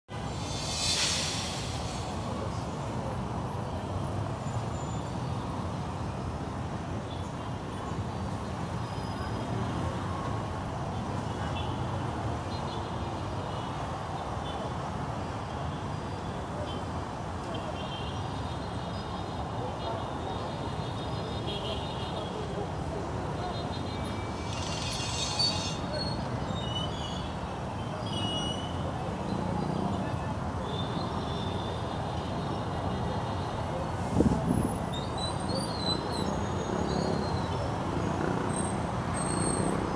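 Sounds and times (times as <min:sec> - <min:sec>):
high-pitched squeal: 0:00.1 - 0:03.1, 0:23.9 - 0:26.9
street traffic rumble: 0:00.1 - 0:39.9
people's voices: 0:00.2 - 0:03.6.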